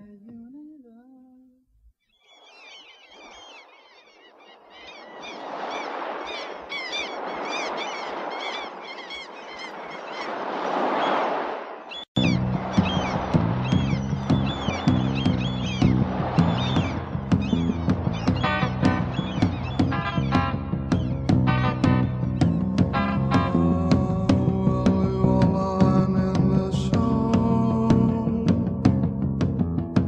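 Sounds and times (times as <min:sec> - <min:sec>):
birds chirping: 0:02.0 - 0:23.6
rushing noise: 0:05.4 - 0:21.0
rock band with drums and bass: 0:12.2 - 0:25.8, 0:26.4 - 0:30.0.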